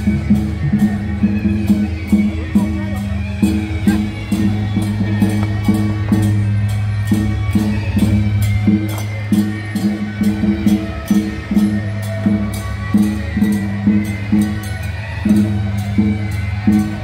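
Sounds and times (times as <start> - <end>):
drums and cymbals beating: 0.0 - 17.0.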